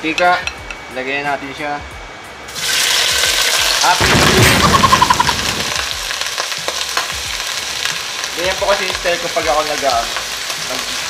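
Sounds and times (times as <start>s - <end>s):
meat sizzling in hot oil: 2.5s - 4.0s, 4.6s - 11.0s.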